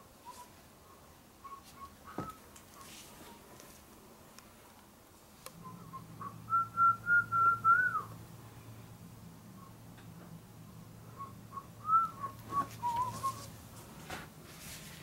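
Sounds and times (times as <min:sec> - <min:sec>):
person whistling a tune: 0:05.6 - 0:08.1, 0:11.2 - 0:13.5.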